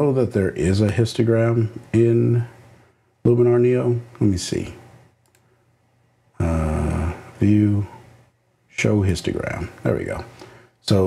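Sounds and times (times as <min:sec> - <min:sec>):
man speaking: 0:00.0 - 0:02.6, 0:03.2 - 0:04.8, 0:06.4 - 0:08.0, 0:08.7 - 0:11.0
computer mouse clicks: 0:05.2 - 0:05.5.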